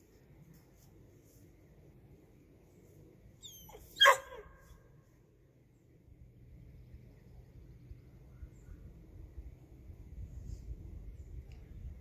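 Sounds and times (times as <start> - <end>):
dog whining: 3.4 - 4.5
dog barking: 4.0 - 4.5.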